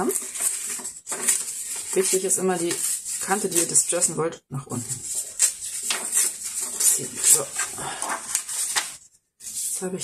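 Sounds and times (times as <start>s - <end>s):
paper tearing: 0.0s - 4.2s, 4.9s - 9.9s.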